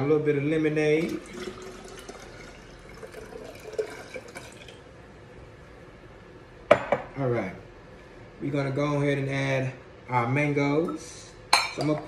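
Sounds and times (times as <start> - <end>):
liquid trickling: 0.8 - 4.9.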